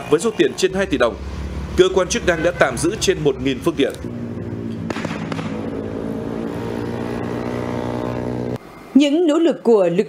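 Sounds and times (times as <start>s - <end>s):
motorbike engines revving high: 0.0s - 8.6s
sharp cracks: 4.7s - 5.9s.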